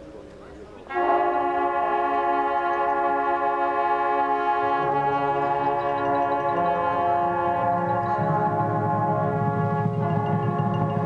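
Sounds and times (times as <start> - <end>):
bugles playing held chord: 0.9 - 11.0
mallet percussion ringing: 4.8 - 11.0.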